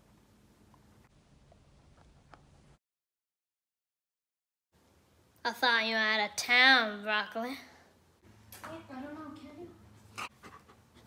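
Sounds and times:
dog panting: 0:10.1 - 0:11.0.

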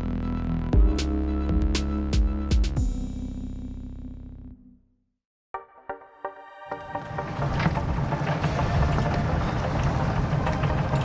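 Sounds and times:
boat diesel engine rumbling: 0:06.8 - 0:11.0.

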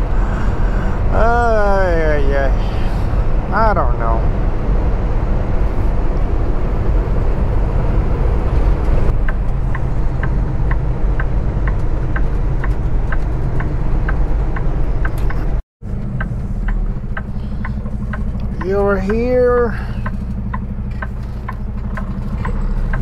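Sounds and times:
truck engine and road noise: 0:00.0 - 0:23.0
turn signal ticking: 0:08.5 - 0:23.0.

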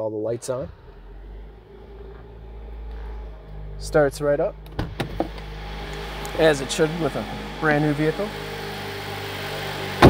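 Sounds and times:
car engine starting and rumbling: 0:00.0 - 0:10.0.

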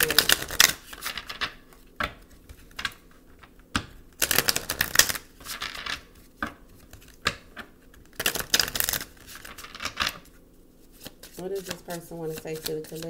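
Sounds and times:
cards shuffling clatter: 0:00.0 - 0:03.5, 0:04.2 - 0:13.0
cards tapping: 0:00.0 - 0:10.3, 0:10.9 - 0:13.0.

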